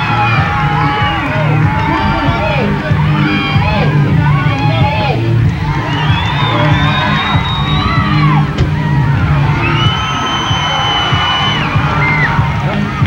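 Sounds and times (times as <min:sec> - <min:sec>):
crowd whooping and yelling: 0:00.0 - 0:13.0
music with steady bass line: 0:00.0 - 0:13.0.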